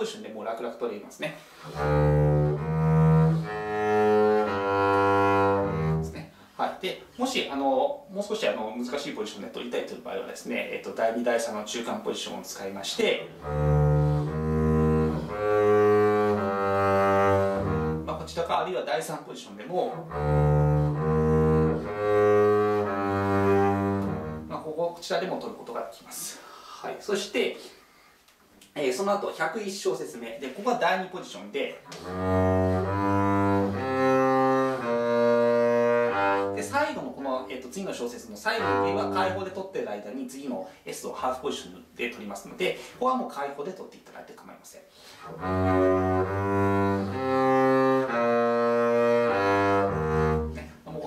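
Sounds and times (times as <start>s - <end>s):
bowed double bass: 1.6s - 6.3s, 13.2s - 18.6s, 19.8s - 24.7s, 31.9s - 39.6s, 45.2s - 51.0s.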